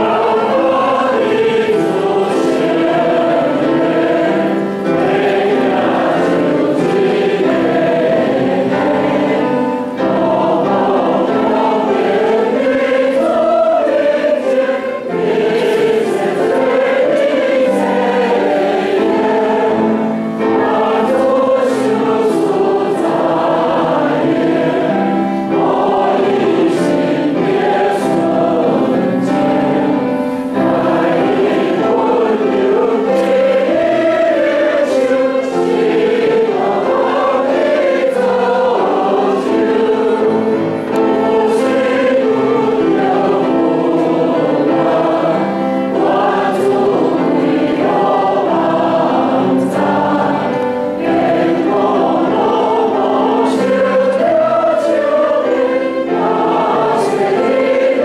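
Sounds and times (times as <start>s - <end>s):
congregation singing a hymn: 0.0s - 58.0s
piano accompaniment: 0.0s - 58.0s.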